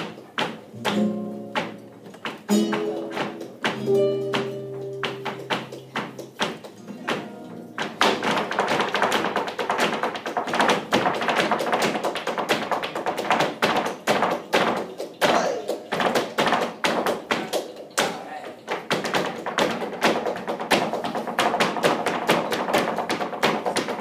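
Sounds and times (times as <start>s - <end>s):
heeled shoes striking stage: 0.0s - 24.0s.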